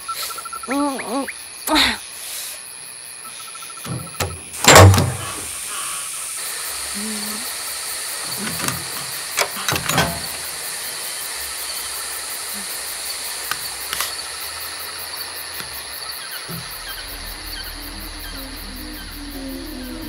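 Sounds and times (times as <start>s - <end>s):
crickets chirring: 0.0s - 20.0s.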